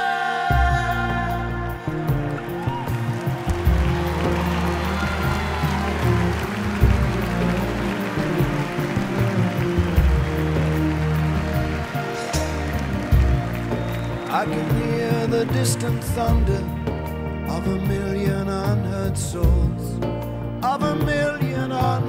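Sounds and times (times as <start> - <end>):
drums: 0.5 - 22.0
electric guitar: 0.5 - 22.0
violin line: 3.1 - 18.6.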